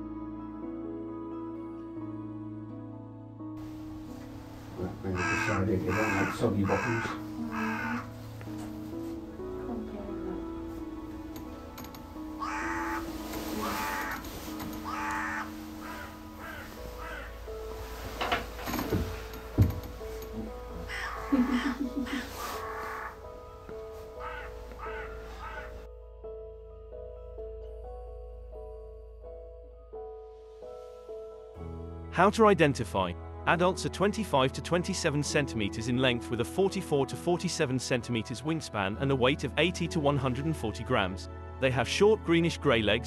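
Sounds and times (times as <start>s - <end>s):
quiet background music: 0.0s - 43.0s
crow cawing: 5.0s - 8.1s, 12.4s - 17.7s, 20.7s - 25.9s.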